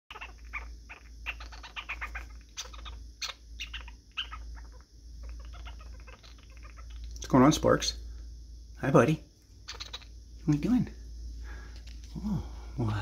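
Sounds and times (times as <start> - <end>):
low steady hum: 0.1 - 13.0.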